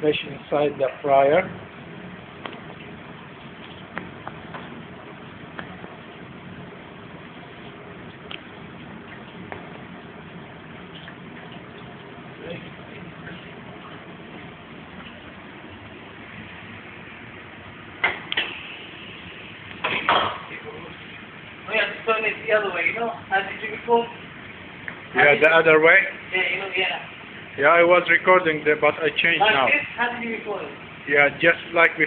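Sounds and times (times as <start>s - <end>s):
deep fryer oil sizzling: 0.0s - 32.0s.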